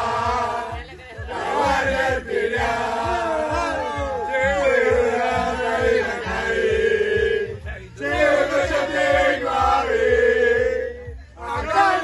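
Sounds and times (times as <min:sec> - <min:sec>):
group chanting together: 0:00.0 - 0:12.0
steady low beat: 0:00.0 - 0:12.0.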